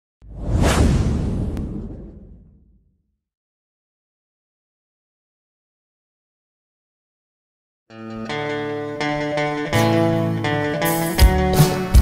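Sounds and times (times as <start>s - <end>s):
whoosh sound effect: 0.2s - 2.9s
deep rumbling low end: 0.2s - 3.0s.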